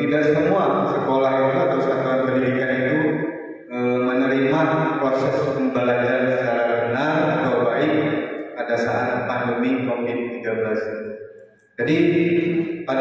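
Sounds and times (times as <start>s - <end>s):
man speaking into a microphone: 0.0s - 3.1s, 3.7s - 11.0s, 11.8s - 13.0s.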